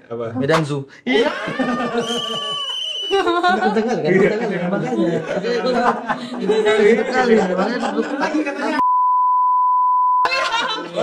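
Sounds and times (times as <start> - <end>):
high-pitched censor bleep: 8.8 - 10.3.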